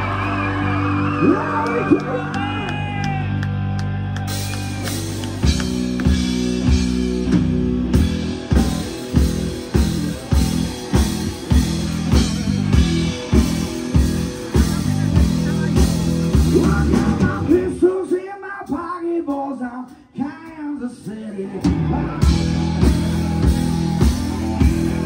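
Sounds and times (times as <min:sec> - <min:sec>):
distorted electric guitar: 0:00.0 - 0:17.9, 0:21.4 - 0:25.0
electric bass: 0:00.0 - 0:18.8, 0:21.2 - 0:25.0
drum kit beat: 0:04.2 - 0:19.5, 0:21.6 - 0:25.0.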